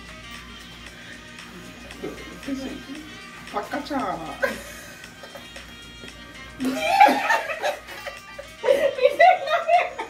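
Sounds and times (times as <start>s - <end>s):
quiet background music: 0.0s - 10.0s
woman laughing: 4.2s - 5.0s, 6.6s - 10.0s.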